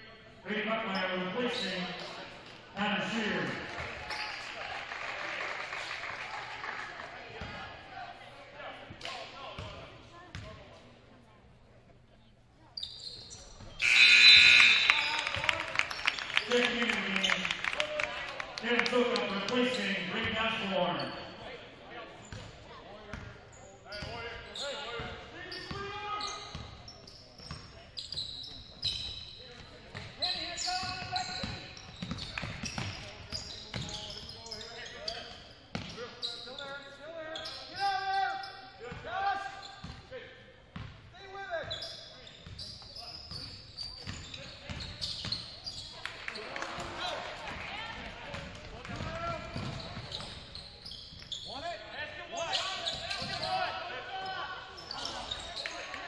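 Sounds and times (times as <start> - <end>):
voices echoing in gymnasium: 0.0 - 56.0
basketball bouncing on wooden floor: 48.3 - 50.3.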